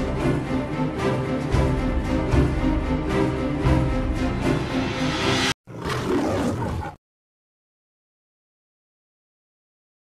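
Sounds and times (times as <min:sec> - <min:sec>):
theme music: 0:00.0 - 0:05.6
roar sound effect: 0:05.6 - 0:07.0.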